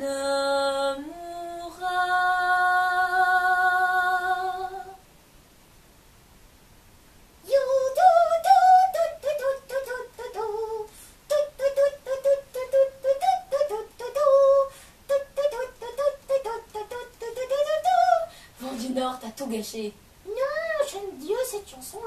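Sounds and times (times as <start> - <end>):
high-pitched puppet voice singing: 7.5 - 18.9, 20.3 - 22.0.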